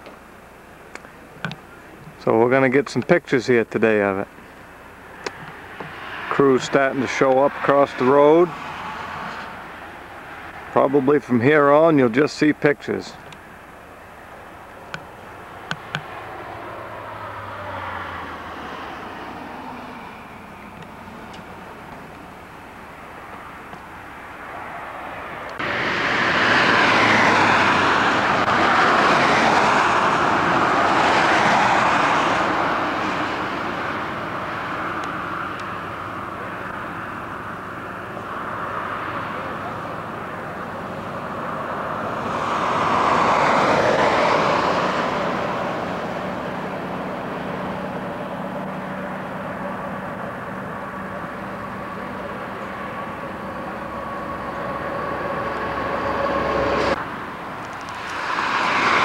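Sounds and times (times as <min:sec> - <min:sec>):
steady engine hum: 0:00.0 - 0:59.0
vehicles passing on road: 0:00.0 - 0:59.0.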